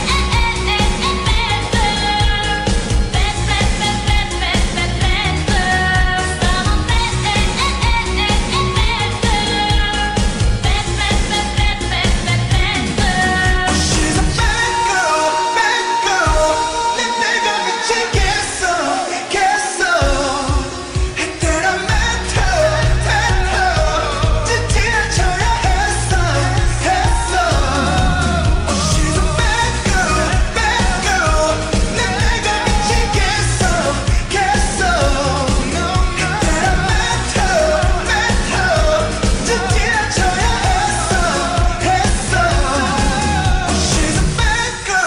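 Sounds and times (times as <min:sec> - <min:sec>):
drums beat: 0:00.0 - 0:14.9, 0:20.0 - 0:44.8
bass: 0:00.0 - 0:45.0
pop singing vocals: 0:00.0 - 0:45.0.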